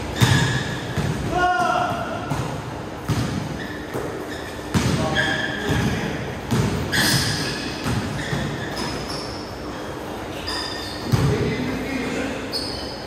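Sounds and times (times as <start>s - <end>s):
sneakers squeaking: 0.0s - 13.0s.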